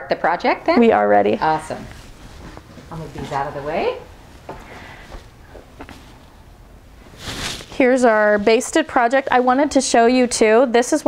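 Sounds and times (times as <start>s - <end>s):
fabric rustling and tapping: 1.9s - 6.3s.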